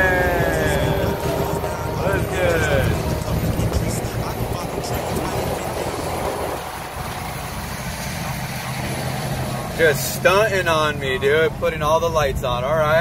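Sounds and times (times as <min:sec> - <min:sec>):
diesel engine drone: 0:00.0 - 0:13.0
road and wind noise: 0:00.0 - 0:13.0.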